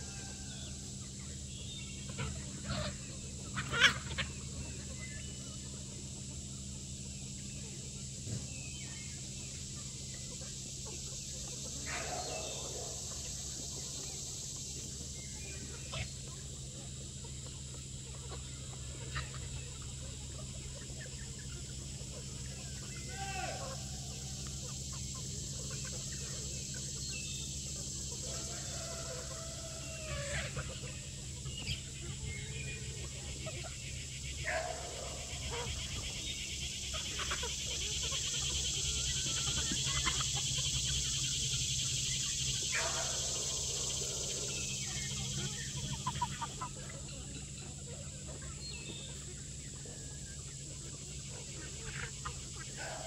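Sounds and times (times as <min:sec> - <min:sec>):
chickens clucking: 0:00.0 - 0:53.0
steady high buzz: 0:00.0 - 0:53.0.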